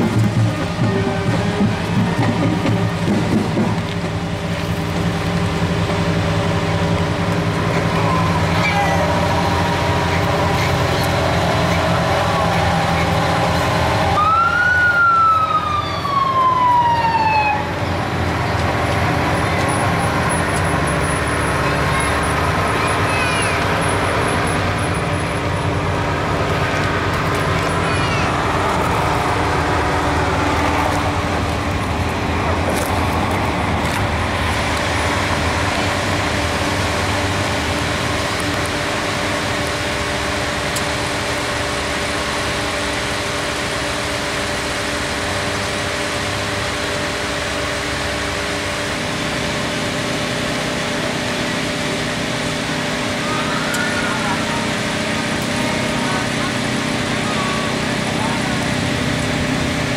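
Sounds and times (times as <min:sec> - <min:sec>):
onlookers' voices: 0:00.0 - 0:04.4, 0:06.4 - 0:39.9, 0:52.0 - 0:59.9
vehicle engines running: 0:00.0 - 0:59.9.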